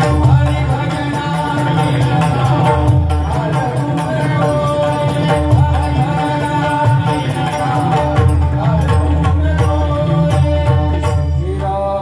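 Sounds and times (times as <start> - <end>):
man singing: 0.0 - 12.0.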